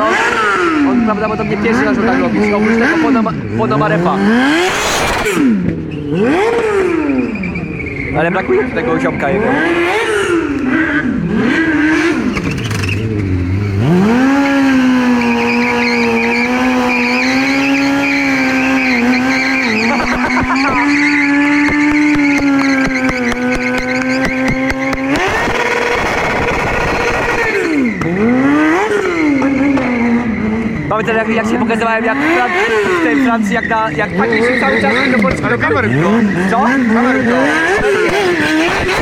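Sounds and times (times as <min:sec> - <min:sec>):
motorcycle engine revving: 0:00.0 - 0:39.0
tyre squeal: 0:04.7 - 0:08.8, 0:12.0 - 0:13.4, 0:14.2 - 0:39.0.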